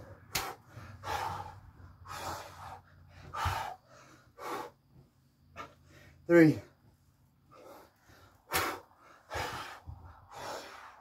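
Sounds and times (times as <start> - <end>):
man breathing hard: 0.0 - 11.0.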